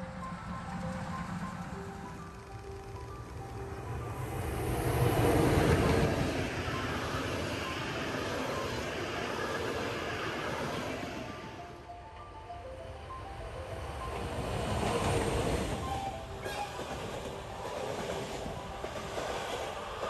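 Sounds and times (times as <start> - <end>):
background music with melody: 0.0 - 20.0
train coaches rolling on rails: 0.0 - 20.0.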